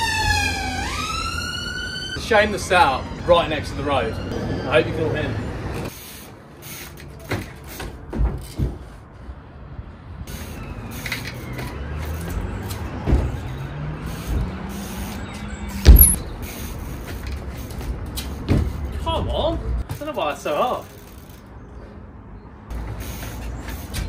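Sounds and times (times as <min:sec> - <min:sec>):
road vehicle engine hum: 0:00.0 - 0:20.1, 0:20.8 - 0:24.0
bike knocks and thuds landing: 0:07.2 - 0:08.9, 0:15.8 - 0:16.3, 0:18.4 - 0:20.0.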